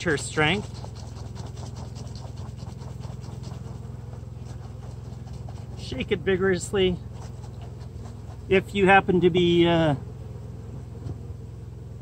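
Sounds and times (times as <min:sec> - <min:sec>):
liquid sloshing in bottles: 0:00.0 - 0:06.2.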